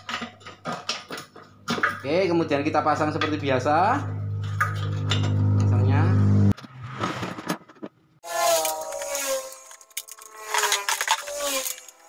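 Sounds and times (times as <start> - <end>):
low steady hum: 1.6 - 6.6.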